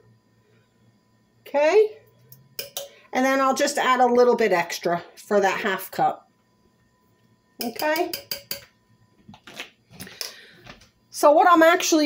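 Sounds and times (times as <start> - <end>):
plastic spoon tapping a crock: 7.6 - 8.7.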